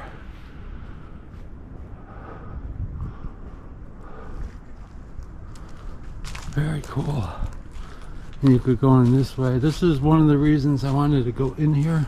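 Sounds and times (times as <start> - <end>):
low outdoor rumble: 0.0 - 12.0
faint scuffs and ticks: 4.1 - 12.0.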